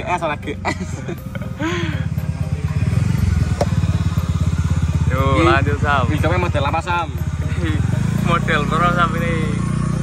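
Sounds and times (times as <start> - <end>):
small engine running: 1.6 - 10.0.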